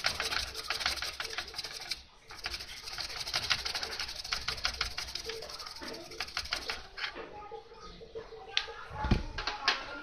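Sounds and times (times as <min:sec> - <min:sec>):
toothbrush scrubbing circuit board: 0:00.0 - 0:07.1.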